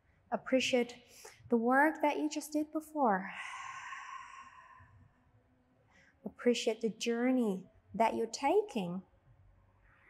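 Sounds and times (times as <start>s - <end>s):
woman sighing: 3.4s - 4.8s.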